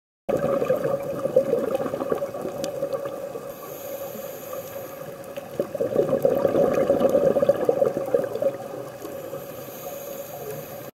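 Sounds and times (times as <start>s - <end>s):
underwater air bubbles gurgling: 0.3s - 10.9s.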